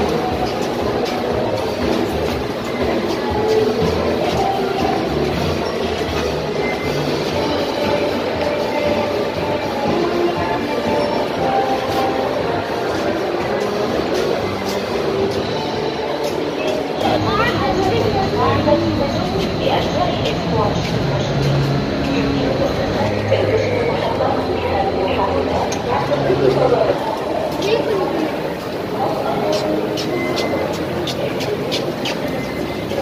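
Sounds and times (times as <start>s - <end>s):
music playing: 0.0s - 33.0s
rumbling indoor crowd noise: 0.0s - 33.0s.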